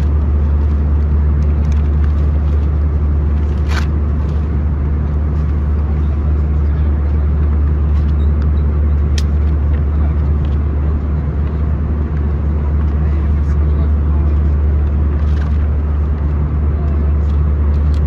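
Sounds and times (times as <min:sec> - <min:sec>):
aircraft cabin noise: 0:00.0 - 0:18.0
low hum: 0:00.0 - 0:18.0.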